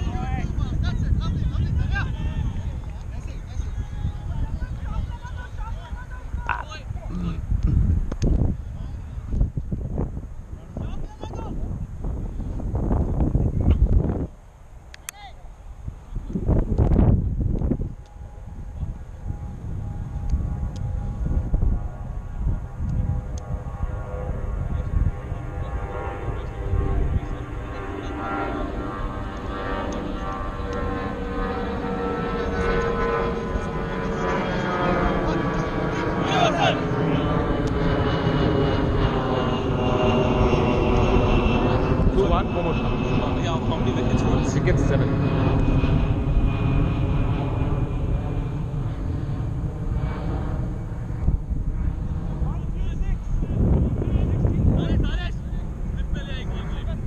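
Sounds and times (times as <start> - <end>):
aircraft engine drone passing: 0.0 - 57.0.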